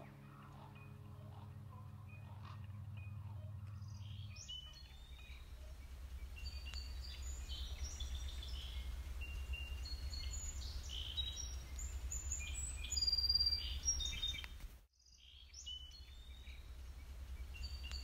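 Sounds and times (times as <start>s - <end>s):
steady low rumble: 0.0s - 14.8s, 15.8s - 18.0s
songbirds chirping and whistling: 0.0s - 18.0s.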